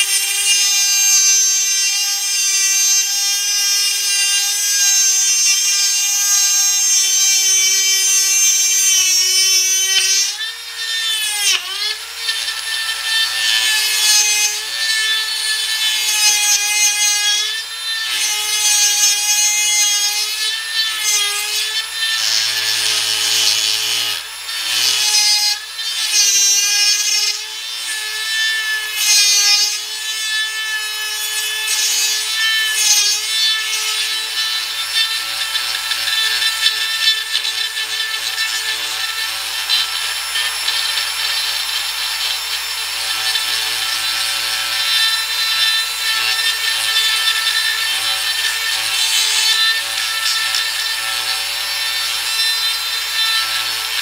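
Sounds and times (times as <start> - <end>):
rotary tool cutting metal: 0.0 - 54.0.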